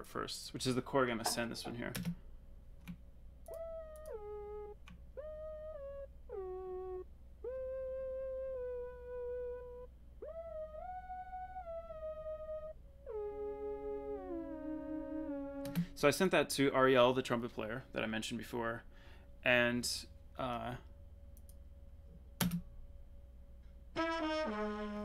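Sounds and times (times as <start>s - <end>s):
synth lead melody gliding: 3.5s - 18.6s.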